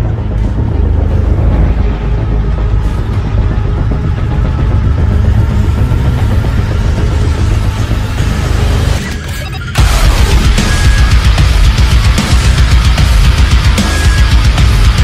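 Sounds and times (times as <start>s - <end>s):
deep engine-like drone: 0.0s - 15.0s.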